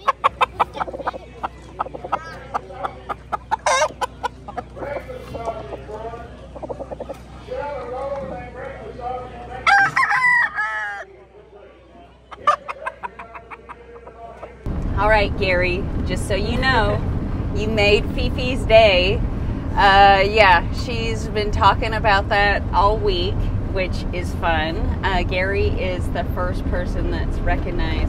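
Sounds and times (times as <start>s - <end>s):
chickens clucking: 0.0s - 14.7s
rooster crowing: 9.6s - 11.1s.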